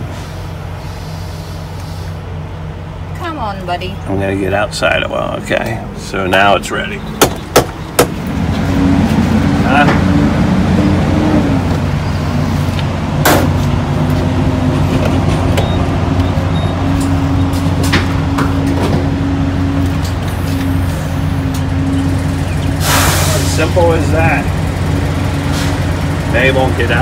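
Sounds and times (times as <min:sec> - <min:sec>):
diesel truck engine idling: 0:00.0 - 0:27.0
sharp knocks: 0:07.2 - 0:08.2.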